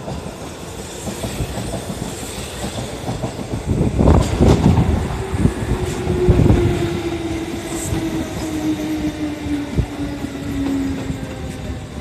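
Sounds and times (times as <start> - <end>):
train wheel and rail rumble: 0.0 - 12.0.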